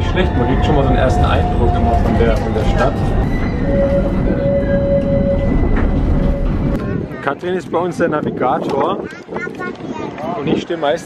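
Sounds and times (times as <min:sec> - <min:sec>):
tram whine: 0:00.0 - 0:07.4
tram rumbling: 0:00.0 - 0:09.9.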